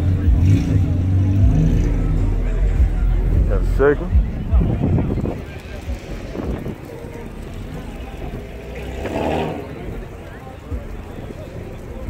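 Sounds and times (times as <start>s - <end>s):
background voices: 0.0s - 12.0s
car engine idling: 0.0s - 12.0s.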